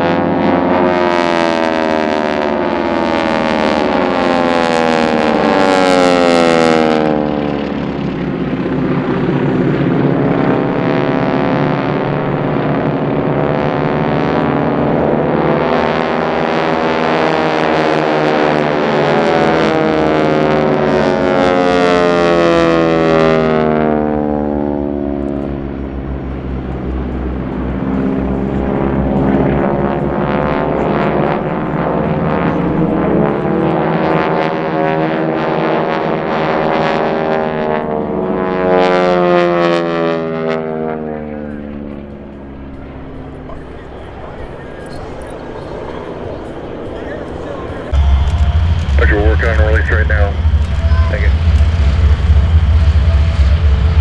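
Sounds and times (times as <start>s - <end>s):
propeller aircraft droning: 0.0s - 54.0s.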